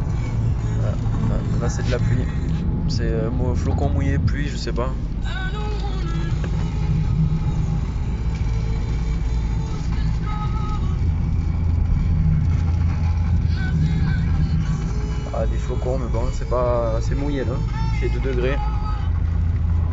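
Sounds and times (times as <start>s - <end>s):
car road and engine rumble: 0.0s - 19.9s.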